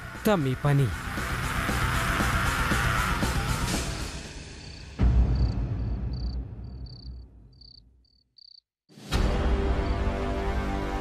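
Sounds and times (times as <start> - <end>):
crickets chirping: 2.5 - 8.6.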